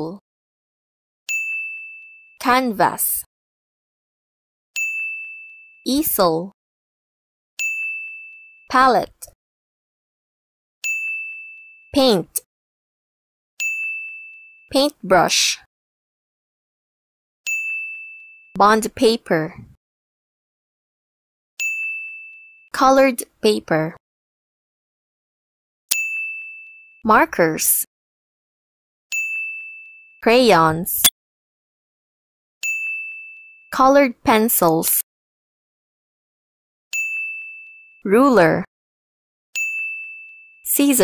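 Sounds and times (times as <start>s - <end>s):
electronic ding: 39.6s - 40.6s.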